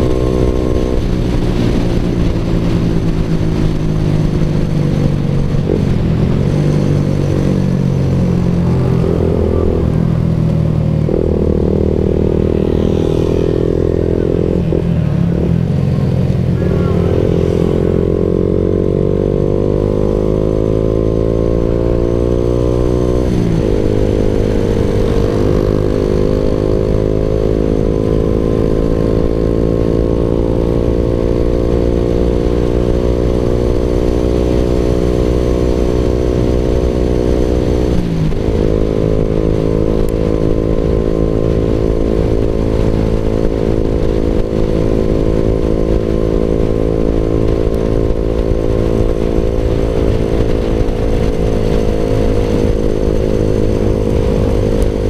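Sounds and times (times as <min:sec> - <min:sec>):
motorcycle engine accelerating: 0:00.0 - 0:55.0.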